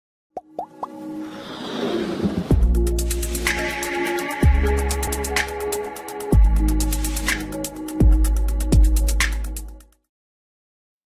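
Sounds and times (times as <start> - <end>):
rising swell of music: 0.8 - 7.9.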